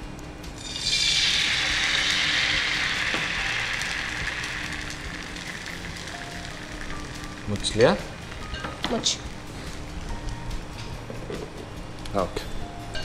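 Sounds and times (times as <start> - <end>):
batter sizzling on hot pan: 0.6 - 10.2.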